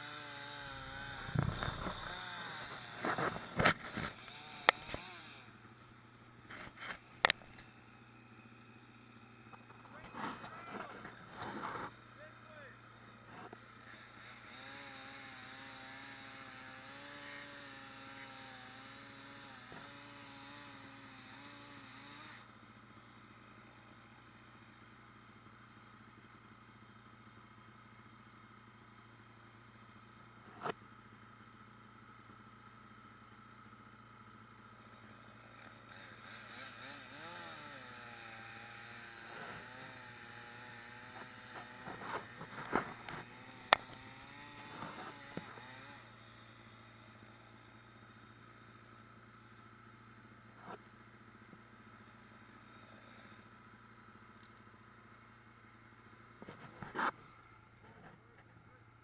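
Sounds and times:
steady low hum: 0:00.0 - 0:14.5
distant chainsaw running: 0:00.0 - 0:59.0.

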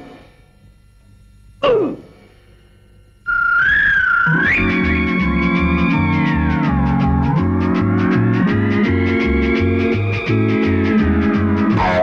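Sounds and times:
high wavering electronic tone: 0:03.2 - 0:10.8, 0:11.8 - 0:12.0
music with pulsing bass: 0:04.2 - 0:12.0
falling cartoon sound effect: 0:11.8 - 0:12.0.

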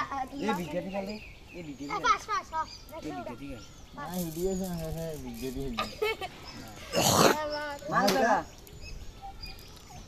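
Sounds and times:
boys talking and calling out: 0:00.0 - 0:10.0.

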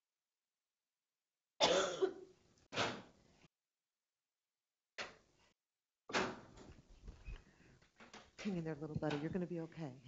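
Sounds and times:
person coughing: 0:01.6 - 0:02.3.

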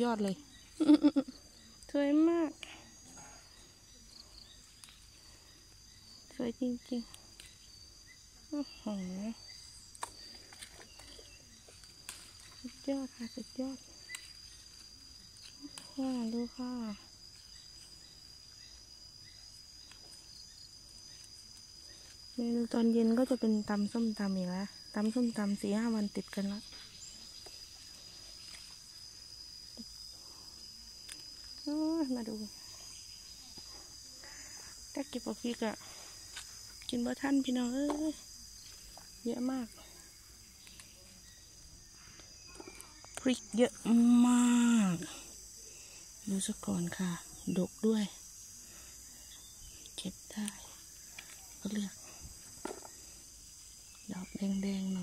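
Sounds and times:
high-pitched insect trilling: 0:00.0 - 0:55.0.

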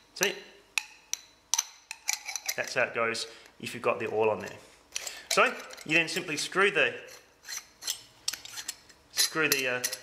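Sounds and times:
plunger sliding in barrel: 0:07.1 - 0:10.0.

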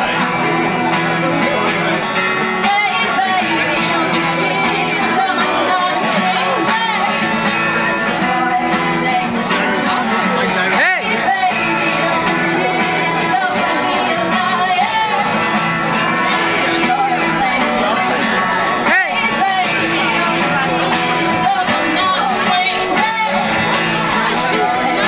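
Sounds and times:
acoustic guitar strumming: 0:00.0 - 0:25.0
woman singing: 0:02.4 - 0:25.0.

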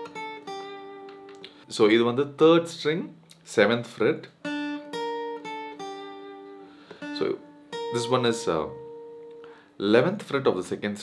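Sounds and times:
acoustic guitar melody: 0:00.0 - 0:10.7.

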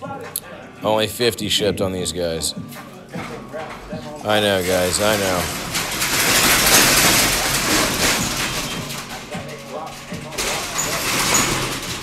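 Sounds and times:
metal shutter rattling: 0:01.3 - 0:12.0.

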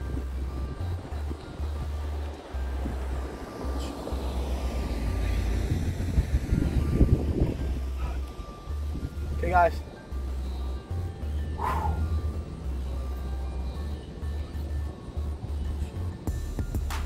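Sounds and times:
synth music with bass line: 0:00.0 - 0:17.0
wind noise on microphone: 0:00.0 - 0:17.0.

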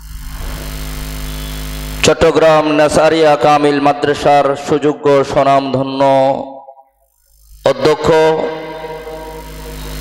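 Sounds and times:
man chanting over loudspeaker: 0:02.0 - 0:06.8, 0:07.6 - 0:09.5.

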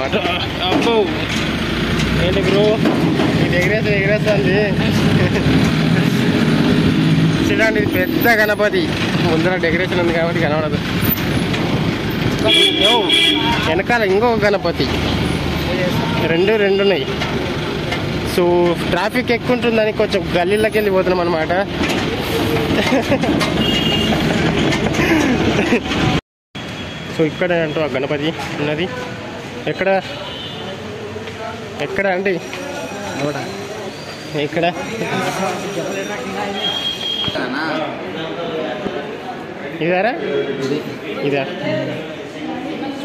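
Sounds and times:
vehicle running on rough street: 0:00.0 - 0:43.0.

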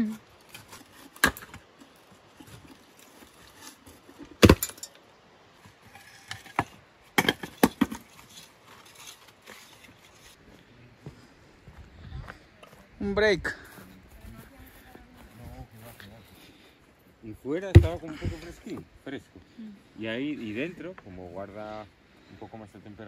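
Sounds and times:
clay bricks knocking and clattering: 0:06.3 - 0:08.1.

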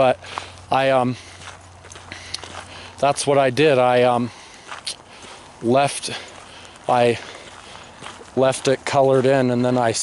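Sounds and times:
quiet footsteps: 0:00.0 - 0:10.0.

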